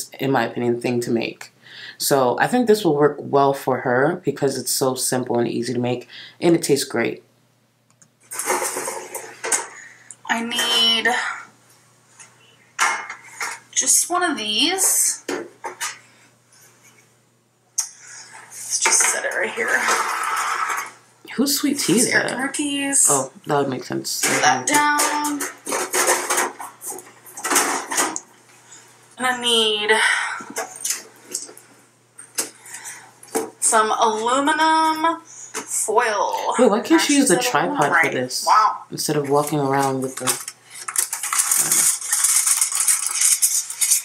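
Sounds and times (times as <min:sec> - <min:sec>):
metal baking pans clattering: 0:08.3 - 0:09.7, 0:12.8 - 0:13.6, 0:24.3 - 0:28.2
metal baking sheets scraping: 0:08.3 - 0:09.8, 0:18.0 - 0:21.0, 0:24.3 - 0:28.2, 0:39.4 - 0:44.0.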